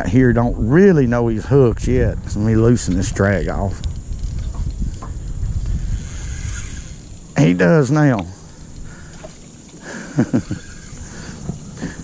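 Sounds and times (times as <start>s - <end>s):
wind buffeting microphone: 0.0s - 9.7s.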